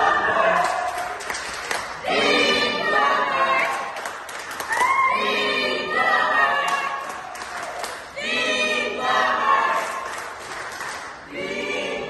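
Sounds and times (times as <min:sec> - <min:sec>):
group singing in chorus: 0:00.0 - 0:12.0.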